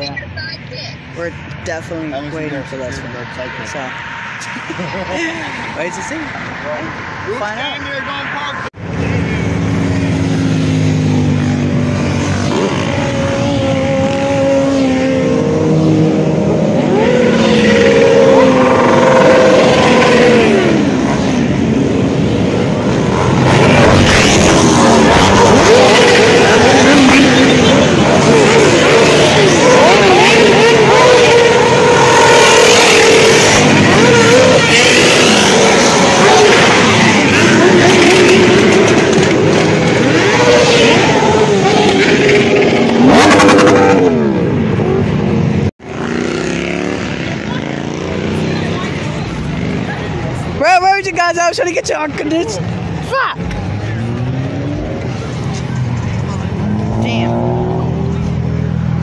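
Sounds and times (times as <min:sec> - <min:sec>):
motorcycles revving past: 0:09.2 - 0:50.6.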